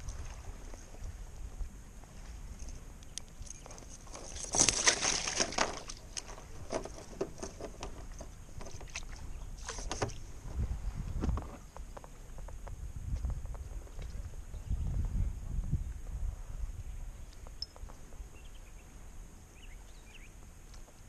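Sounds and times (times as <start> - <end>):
basket splashing into water: 4.6 - 6.3.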